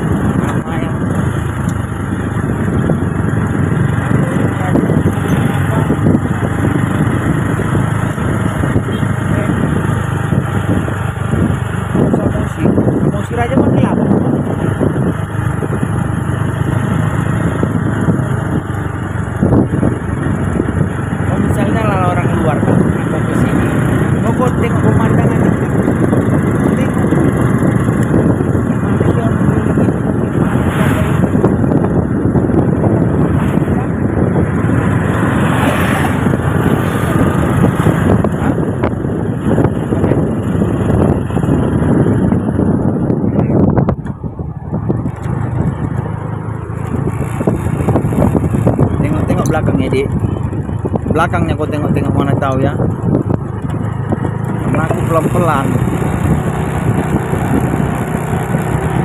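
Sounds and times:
vehicle engine running: 0:00.0 - 0:59.0
wind and road noise: 0:00.0 - 0:59.0.

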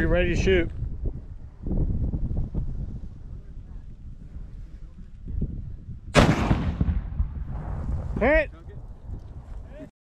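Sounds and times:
wind rumble on microphone: 0:00.0 - 0:09.9
recoilless rifle shot: 0:06.1 - 0:07.7.

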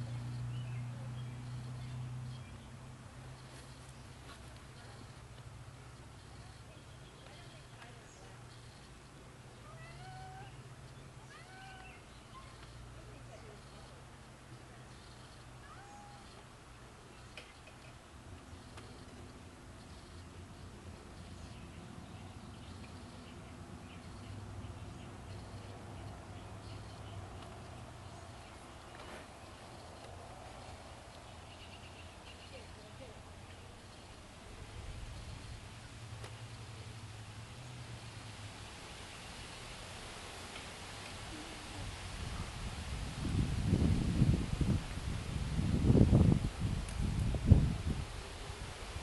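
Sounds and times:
background hiss: 0:00.0 - 0:49.0
low steady hum: 0:00.0 - 0:49.0.

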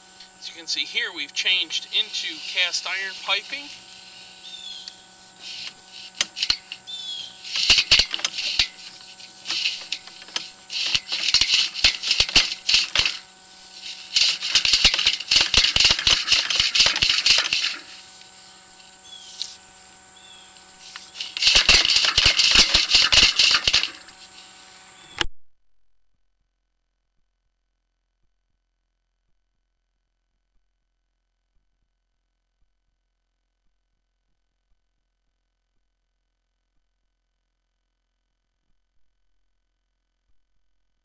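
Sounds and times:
faint hum: 0:00.0 - 0:41.0
push rod rattling and clicking: 0:07.5 - 0:13.2, 0:14.2 - 0:17.8, 0:21.2 - 0:24.1.

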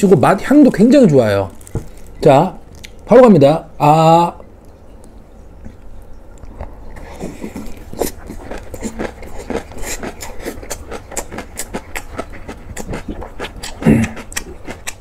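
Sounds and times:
wet crunchy chewing: 0:01.5 - 0:03.0, 0:06.4 - 0:15.0.

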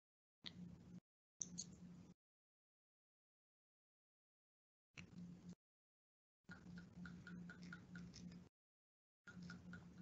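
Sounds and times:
faint rhythmic ticking: 0:06.5 - 0:08.5, 0:09.3 - 0:10.0.

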